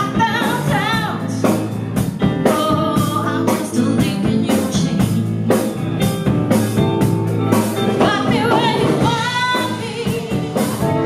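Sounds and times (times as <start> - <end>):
woman singing: 0.0 - 5.6, 7.8 - 11.0
blues band playing: 0.0 - 11.0.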